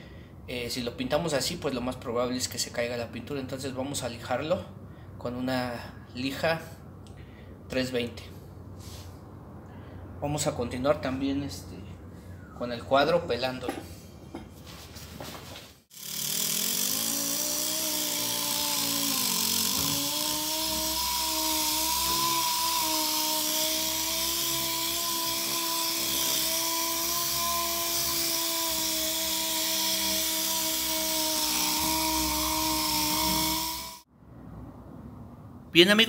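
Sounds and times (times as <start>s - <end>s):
orbital sander whining: 15.9s - 34.1s.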